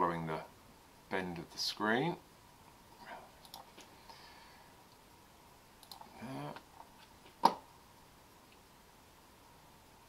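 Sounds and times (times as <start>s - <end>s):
computer mouse clicking: 3.4s - 3.9s, 5.8s - 6.6s
man's voice murmuring: 6.1s - 6.6s.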